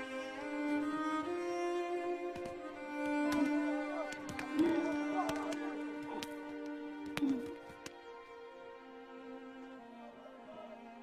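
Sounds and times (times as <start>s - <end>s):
sustained string notes: 0.0s - 11.0s.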